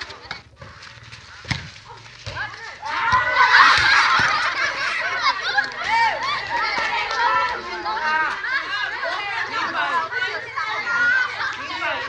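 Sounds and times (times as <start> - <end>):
women shouting: 2.3 - 4.4, 5.0 - 12.0.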